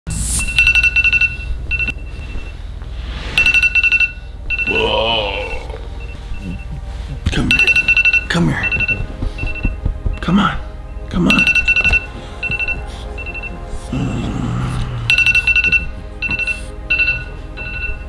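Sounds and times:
alarm ringtone pulsed bursts: 0.3 - 2.6, 3.3 - 6.8, 7.4 - 9.8, 10.8 - 13.7, 15.1 - 18.0
non-word vocal sounds: 4.7 - 7.5, 13.5 - 15.1.

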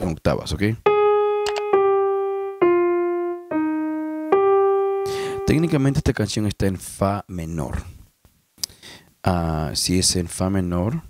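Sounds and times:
digital piano single notes: 0.8 - 6.2.

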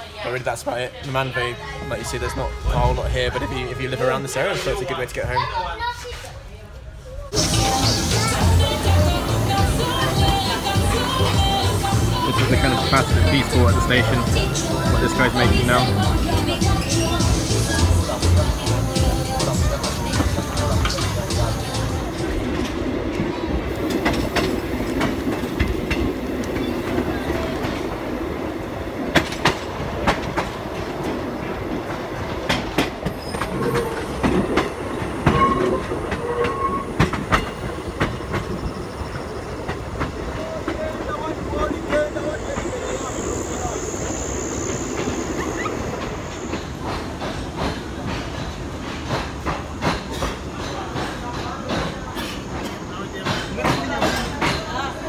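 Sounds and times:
train rumble: 0.0 - 55.0
high-pitched squeal: 41.6 - 46.8.

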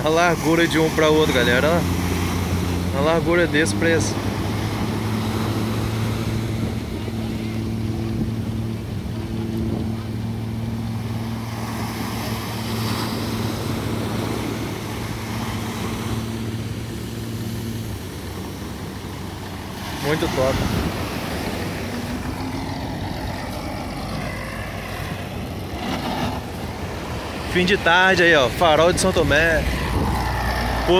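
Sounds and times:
diesel boat engine droning: 0.0 - 30.9
surf: 0.0 - 30.9
wind noise: 20.4 - 22.3, 28.5 - 30.9.

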